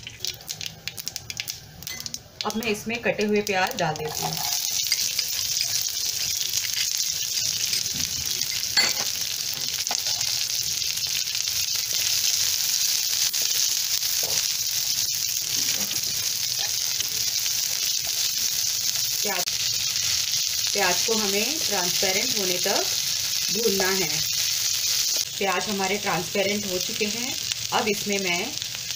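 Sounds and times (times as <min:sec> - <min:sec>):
onion sizzling in hot oil: 0:00.0 - 0:28.9.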